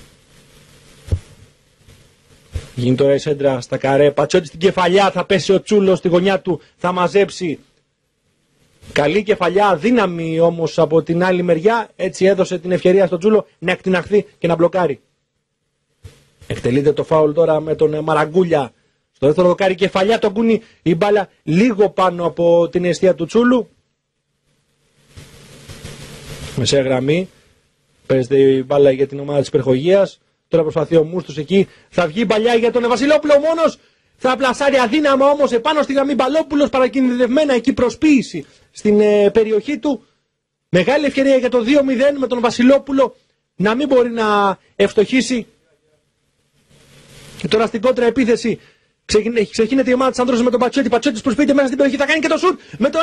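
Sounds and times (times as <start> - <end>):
faint background hiss: 0.0 - 53.0
low thump: 1.0 - 1.4
soft low thuds: 1.0 - 2.8.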